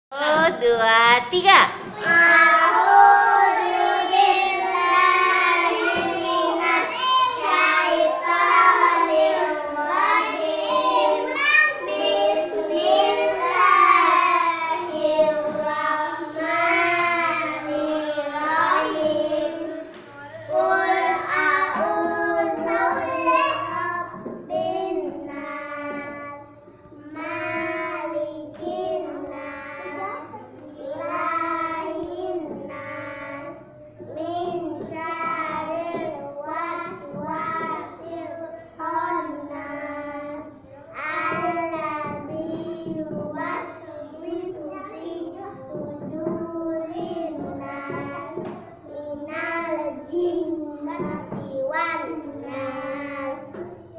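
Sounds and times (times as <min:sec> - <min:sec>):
children chanting in unison: 0:01.8 - 0:53.9.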